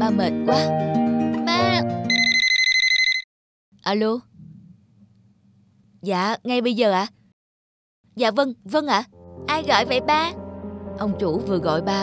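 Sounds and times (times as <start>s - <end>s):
mobile phone ringing: 2.1s - 3.3s.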